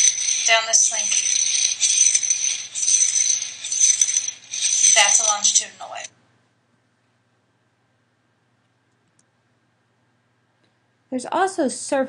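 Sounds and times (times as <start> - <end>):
plastic slinky coils rattling: 0.0 - 6.1.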